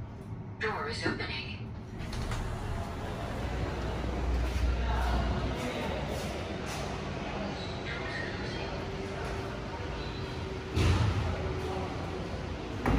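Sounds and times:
lift doors sliding closed: 1.8s - 4.5s.

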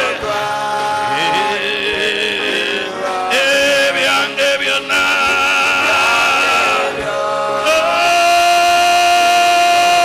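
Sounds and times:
person singing a long high note: 7.6s - 10.0s.

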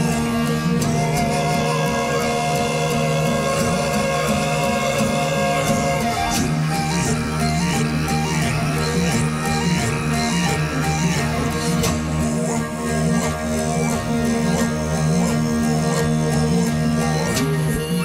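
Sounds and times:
bowed fiddles playing riff: 0.0s - 18.0s
low drone: 0.0s - 18.0s
plucked lute: 0.0s - 18.0s.

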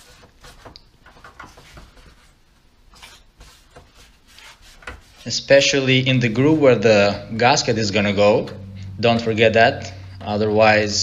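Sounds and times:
rubbing and scratchy wiping strokes: 0.0s - 7.2s.

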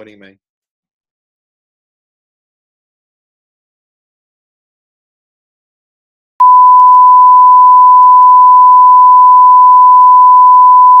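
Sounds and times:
sine test tone: 6.4s - 11.0s.

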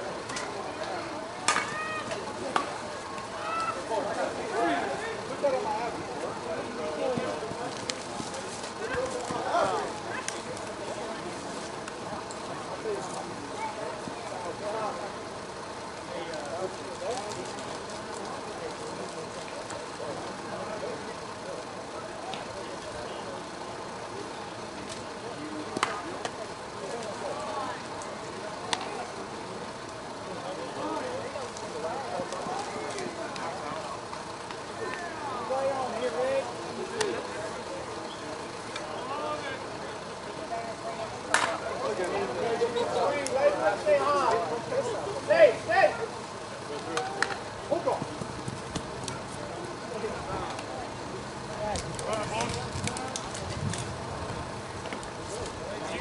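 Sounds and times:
indistinct voices talking: 0.0s - 56.0s.

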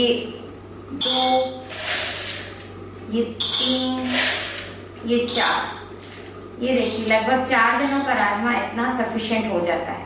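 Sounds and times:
person speaking: 3.0s - 5.9s.

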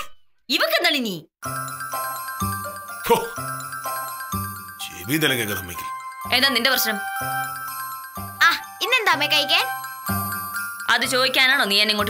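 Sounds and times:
tinkling chime-like music: 1.4s - 12.0s
woman speaking: 6.3s - 7.2s, 8.4s - 9.7s, 10.9s - 12.0s.

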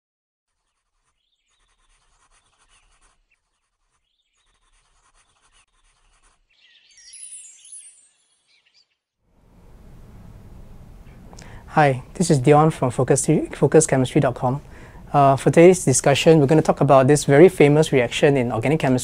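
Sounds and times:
pencil scribbling on paper: 0.5s - 6.8s
bright flourish with sweeping pitches: 6.9s - 8.9s
room hiss: 9.4s - 19.0s.

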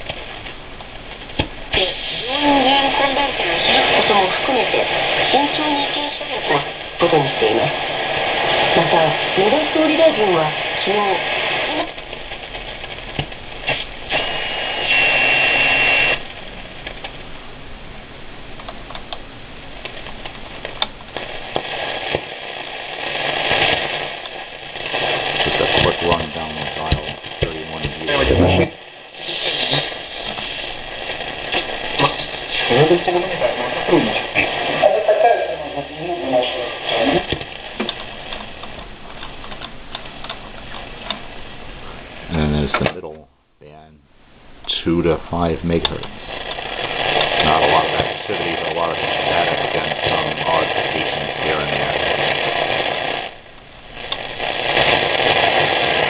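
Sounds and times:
radio static and hiss: 0.0s - 44.0s, 44.6s - 56.0s
faint radio voices: 1.7s - 12.0s, 25.0s - 30.8s, 31.5s - 37.6s, 44.8s - 52.6s
high radio whistle: 13.7s - 16.2s, 24.9s - 37.3s.

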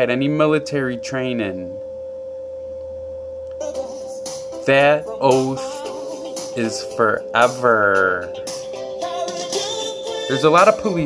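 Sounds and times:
faint low hum: 0.0s - 8.5s
steady mid-pitched tone: 0.0s - 11.0s.

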